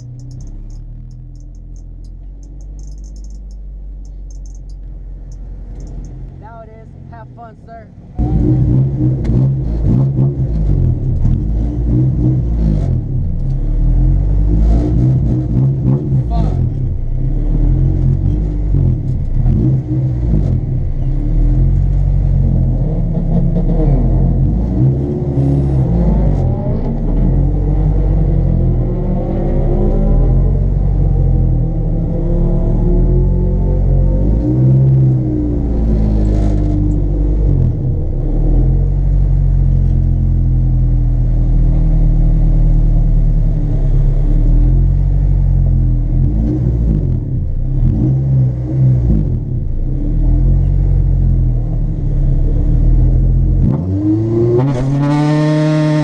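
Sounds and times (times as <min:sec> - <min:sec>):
car engine from inside cabin: 0:00.0 - 0:56.0.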